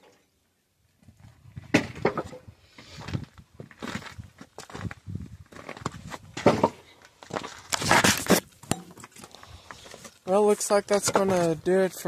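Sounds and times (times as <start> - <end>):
footsteps crunching on gravel: 3.0 - 6.4, 7.0 - 12.0.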